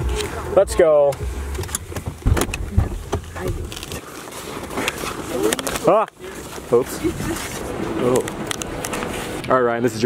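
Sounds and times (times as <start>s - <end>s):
engine and road rumble: 0.0s - 10.0s
sharp clicks and knocks: 1.1s - 4.0s.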